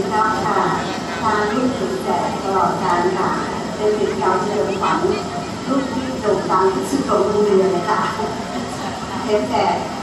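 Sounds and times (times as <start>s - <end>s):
woman talking over loudspeakers: 0.0s - 8.4s, 9.2s - 9.9s.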